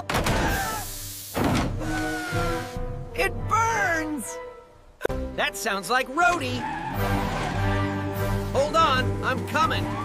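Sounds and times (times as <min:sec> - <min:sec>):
background music: 0:00.0 - 0:10.0
cartoon steam hissing: 0:00.5 - 0:02.8.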